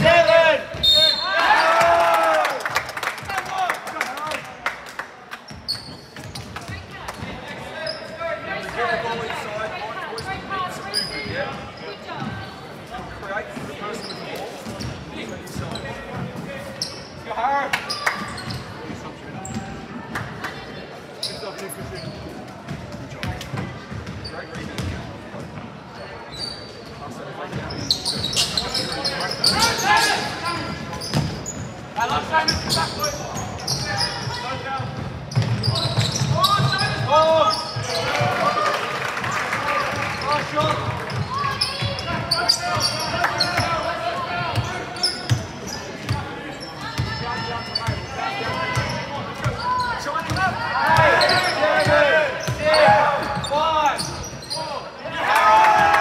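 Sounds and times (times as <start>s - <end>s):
sneakers squeaking: 0.0s - 1.8s, 5.5s - 8.4s, 10.0s - 20.0s, 21.2s - 55.1s
players and spectators shouting: 0.0s - 2.6s, 46.6s - 56.0s
voices of players and spectators: 0.0s - 56.0s.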